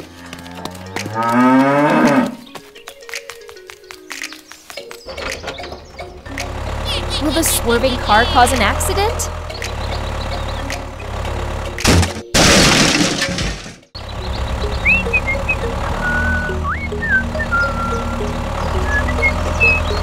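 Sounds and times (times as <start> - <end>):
background music: 0.0 - 12.4, 14.2 - 20.0
loud crash sound effect: 11.8 - 13.9.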